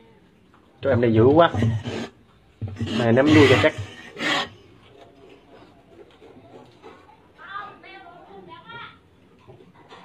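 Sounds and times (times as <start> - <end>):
animal rasping noise: 1.4 - 4.7.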